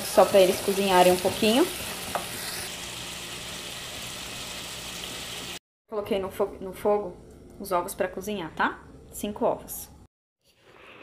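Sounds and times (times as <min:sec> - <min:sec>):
food sizzling in oil: 0:00.0 - 0:05.6.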